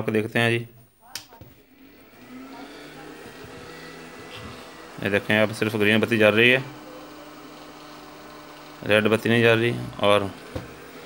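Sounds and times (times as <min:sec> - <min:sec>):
cooling fan humming: 0:01.6 - 0:11.0.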